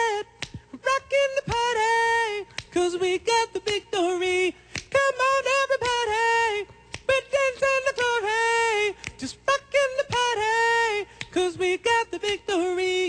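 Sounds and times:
man singing a cappella: 0.0 - 13.0.

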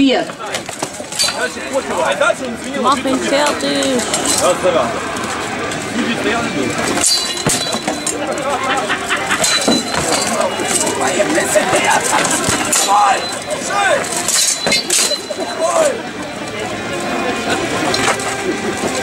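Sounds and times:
crowd chatter: 0.0 - 19.0
swords clanging on armour: 7.0 - 8.2, 12.2 - 13.4, 14.0 - 15.5.

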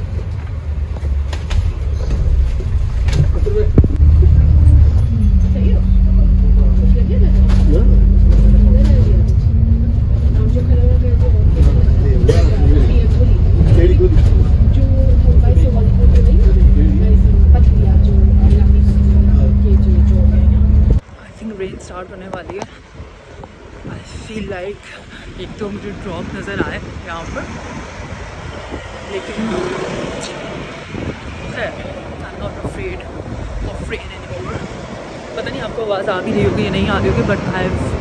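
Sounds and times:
bus engine rumble: 0.0 - 38.0.

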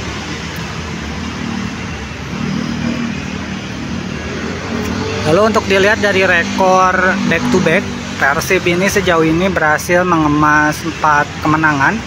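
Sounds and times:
cars passing on road: 0.0 - 12.0
motorcycles passing: 0.0 - 12.0.

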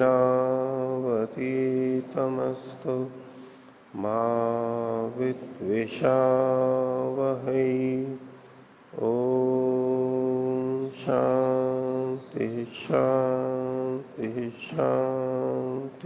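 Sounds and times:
man chanting: 0.0 - 8.3, 8.9 - 16.0.

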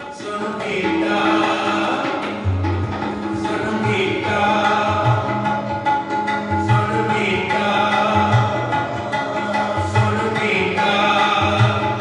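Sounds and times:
man singing devotional song: 0.0 - 2.5, 3.3 - 5.9, 6.6 - 12.0
harmonium: 0.0 - 12.0
tabla: 0.0 - 12.0.

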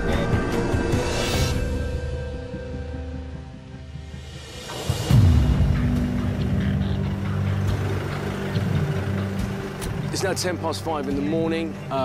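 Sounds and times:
vehicle engine idling: 5.1 - 12.0.

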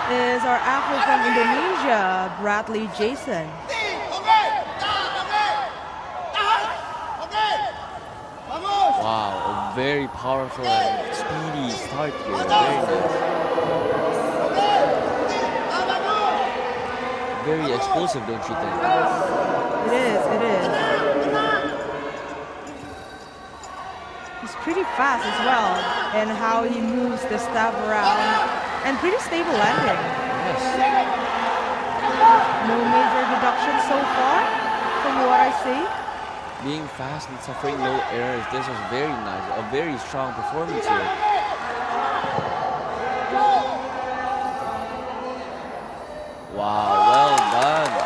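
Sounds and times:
arena ambience: 0.0 - 48.0
voices calling out: 0.0 - 48.0
man's voice: 9.0 - 16.4, 17.4 - 21.8, 36.6 - 41.2.

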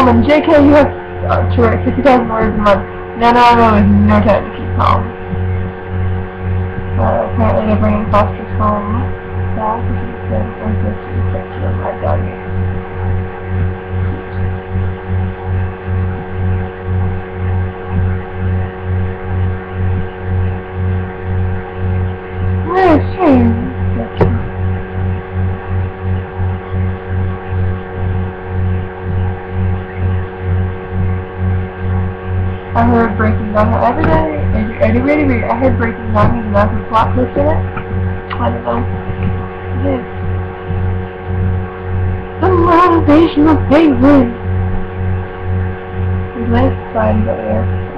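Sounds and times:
woman's wavering voice: 0.0 - 5.2, 7.0 - 12.3, 22.6 - 24.5, 32.8 - 37.7, 38.3 - 39.0, 39.8 - 40.1, 42.4 - 44.4, 46.4 - 47.7
low electrical hum: 0.0 - 47.9.

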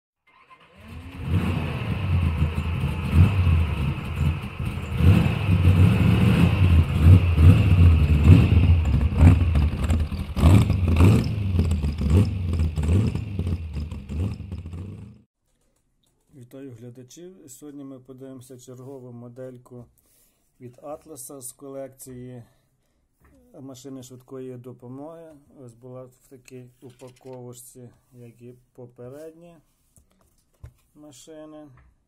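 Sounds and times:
car engine starting and revving: 0.3 - 15.2.

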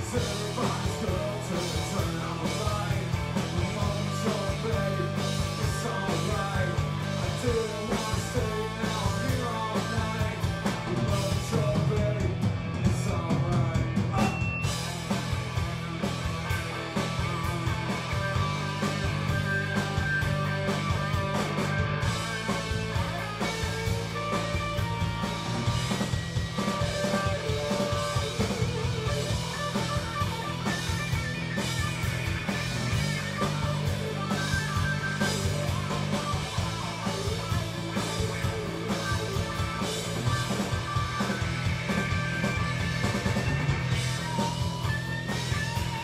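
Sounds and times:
drum kit beat: 0.0 - 46.0
electric guitars: 0.0 - 46.0.

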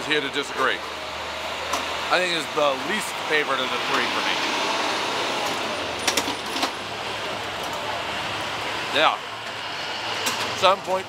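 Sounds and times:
passing traffic: 0.0 - 11.0.

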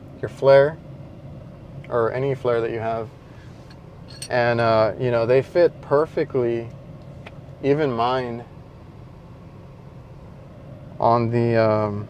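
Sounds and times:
vehicle cab hum and hiss: 0.0 - 12.0.

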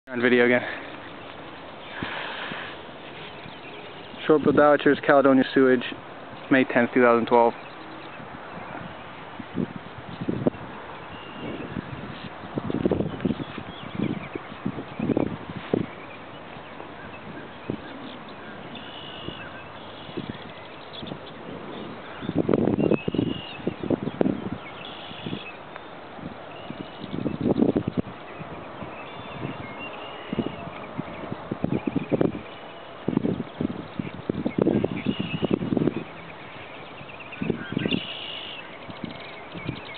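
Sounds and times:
high bird calls: 0.1 - 39.9
outdoor hiss: 0.3 - 6.0.

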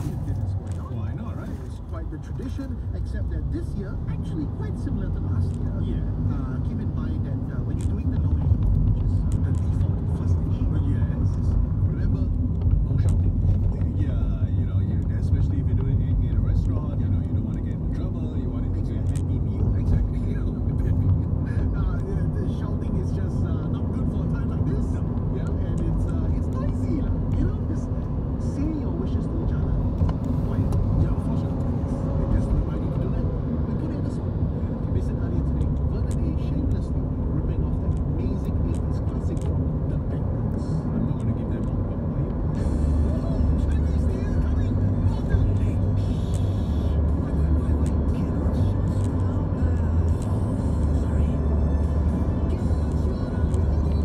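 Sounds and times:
car cabin road rumble: 0.0 - 54.0.

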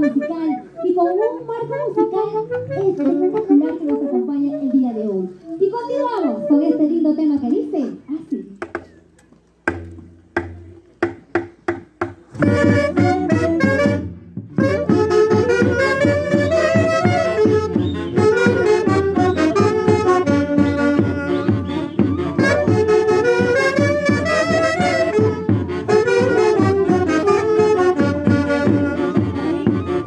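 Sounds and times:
saxophones playing in harmony: 0.0 - 7.2, 12.4 - 30.0.

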